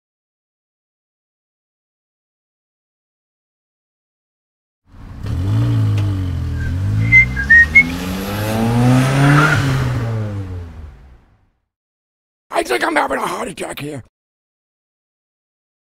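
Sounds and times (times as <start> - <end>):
car engine revving: 4.9 - 11.3
short high squeals: 6.6 - 8.0.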